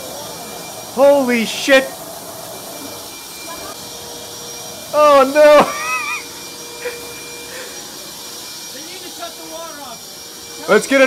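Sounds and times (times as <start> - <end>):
water spraying hiss: 0.0 - 11.0
wet vacuum motor whine: 0.0 - 11.0.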